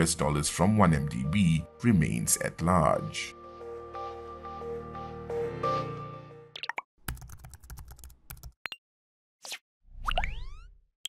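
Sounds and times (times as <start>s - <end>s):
background music: 0.0s - 6.5s.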